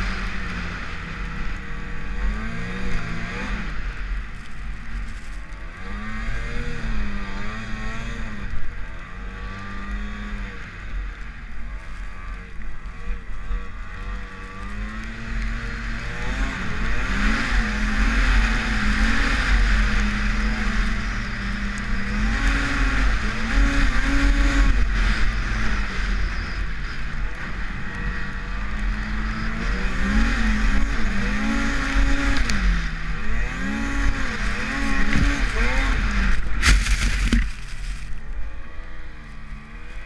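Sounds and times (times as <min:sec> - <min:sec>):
snowmobile engine revving: 0:00.0 - 0:40.0.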